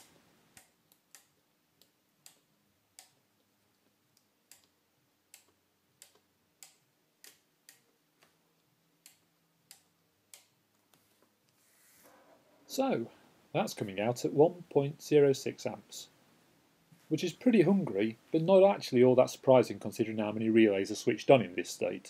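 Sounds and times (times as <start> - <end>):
faint steady hum: 0.0 - 22.0
sharp relay clicks: 4.2 - 7.9.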